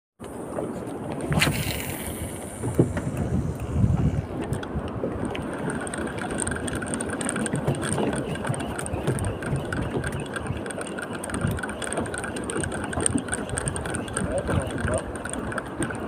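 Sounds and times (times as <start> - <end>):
choppy water: 0.2 - 16.0
wind on microphone: 0.5 - 16.0
boat engine idling: 2.2 - 16.0.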